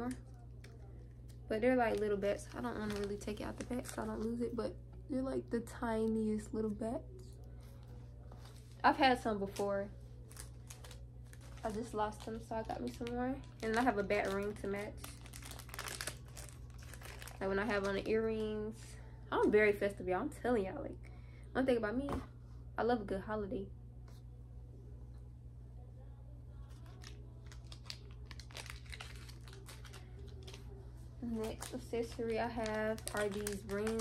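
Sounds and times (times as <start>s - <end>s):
plastic bag crinkling: 1.7s - 4.3s, 10.2s - 18.5s, 26.7s - 34.0s.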